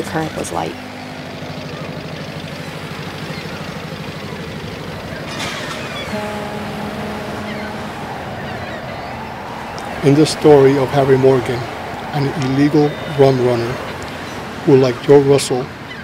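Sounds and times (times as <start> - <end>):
boat engine running: 0.0 - 16.0
rushing water: 0.0 - 16.0
steady tone: 6.0 - 14.4.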